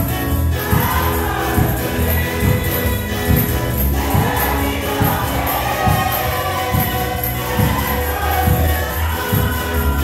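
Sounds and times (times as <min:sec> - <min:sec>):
band playing: 0:00.0 - 0:10.0
congregation singing a hymn: 0:00.0 - 0:10.0.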